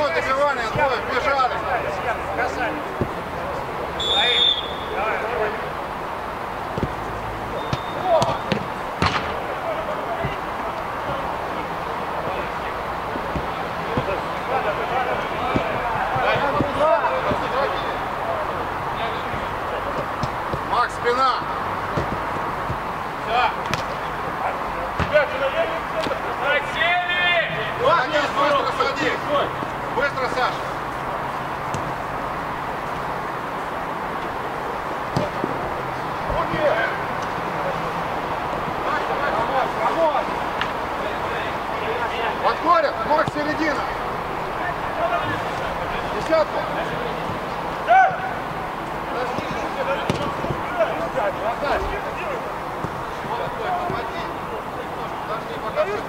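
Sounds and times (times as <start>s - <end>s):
players shouting: 0.0s - 56.0s
steady background noise: 0.0s - 56.0s
ball being kicked: 3.0s - 3.3s, 6.7s - 7.0s, 7.6s - 9.4s, 10.1s - 11.4s, 13.2s - 14.7s, 15.4s - 17.6s, 19.3s - 20.8s, 21.8s - 23.0s, 23.6s - 24.0s, 25.0s - 25.2s, 35.1s - 35.4s, 43.2s - 43.5s, 49.3s - 50.7s
short high whistle blast: 4.0s - 5.0s.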